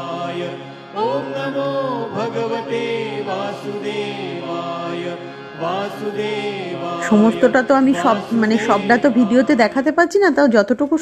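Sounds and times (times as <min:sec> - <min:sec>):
chanted mantra with music: 0:00.0 - 0:09.9.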